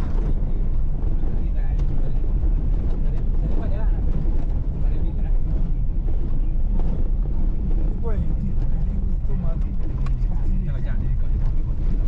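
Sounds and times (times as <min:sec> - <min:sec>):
car engine and tyre rumble on gravel: 0:00.0 - 0:12.0.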